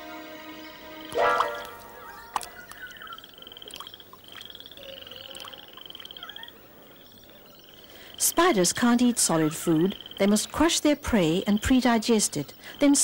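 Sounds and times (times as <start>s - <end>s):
frog trilling: 1.4s - 10.4s.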